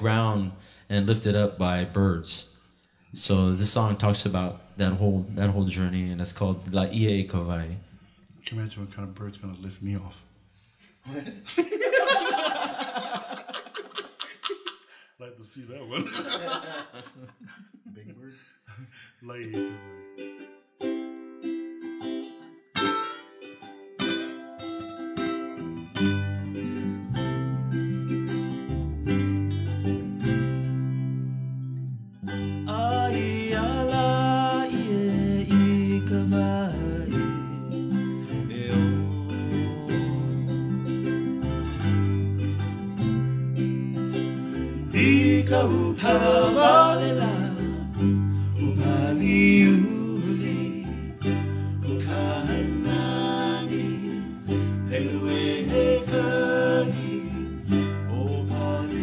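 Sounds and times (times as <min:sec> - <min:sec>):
acoustic guitar: 0:00.0 - 0:13.6, 0:18.7 - 0:59.0
ukulele picking: 0:19.5 - 0:59.0
bass guitar: 0:24.0 - 0:59.0
person singing: 0:32.6 - 0:41.1, 0:44.6 - 0:59.0.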